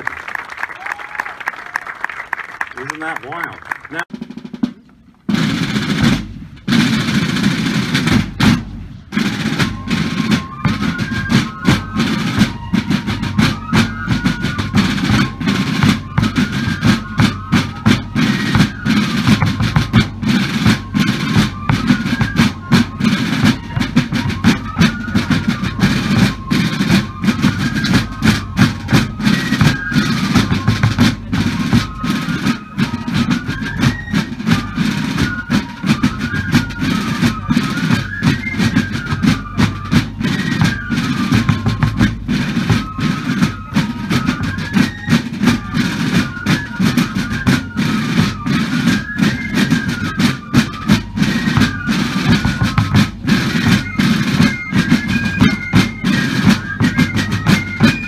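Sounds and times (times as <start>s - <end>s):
snare and bass drums: 2.8s - 58.0s
fifes playing march tune: 5.3s - 58.0s.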